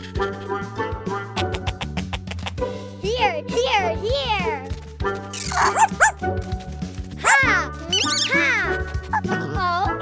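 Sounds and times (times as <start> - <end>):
cheerful children's music: 0.0 - 10.0
cartoon dog yipping: 5.4 - 6.2, 7.2 - 9.4.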